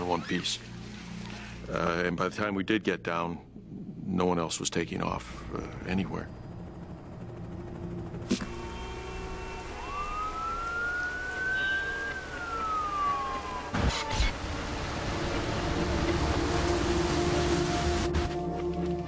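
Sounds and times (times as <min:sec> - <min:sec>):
emergency siren wailing: 0:06.8 - 0:18.5.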